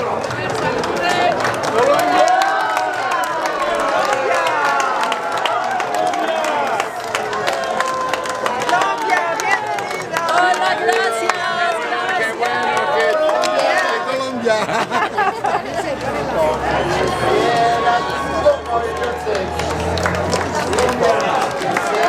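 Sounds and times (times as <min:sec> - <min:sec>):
crowd talking and calling out: 0:00.0 - 0:22.0
hand clapping: 0:18.5 - 0:22.0.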